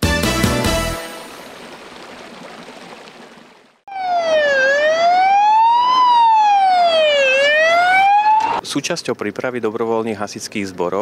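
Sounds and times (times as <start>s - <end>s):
wailing siren: 3.9s - 8.6s.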